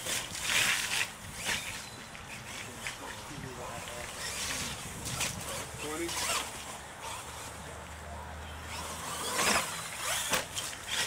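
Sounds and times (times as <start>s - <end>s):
tires scrabbling in dirt: 0.0s - 8.0s, 8.6s - 11.0s
toy truck motor: 8.7s - 11.0s.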